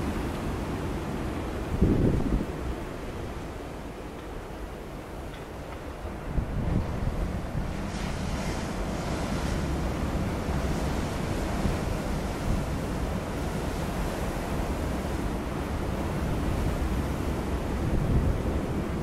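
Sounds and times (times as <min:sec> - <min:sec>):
wind on microphone: 0:01.6 - 0:03.2, 0:06.2 - 0:19.0.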